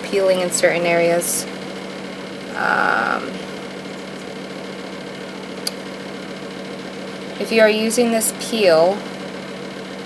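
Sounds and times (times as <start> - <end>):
small electric motor humming: 0.0 - 10.0.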